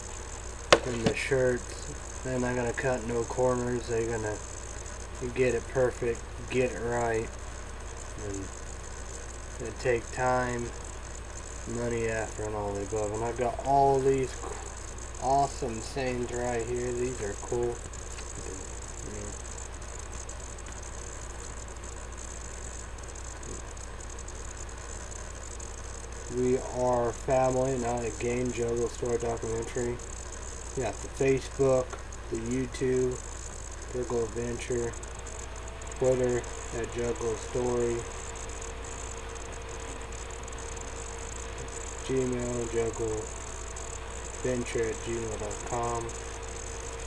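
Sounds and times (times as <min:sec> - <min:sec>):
constant hiss: 0:00.0 - 0:47.0
faint constant tone: 0:00.0 - 0:47.0
low hum: 0:00.0 - 0:47.0.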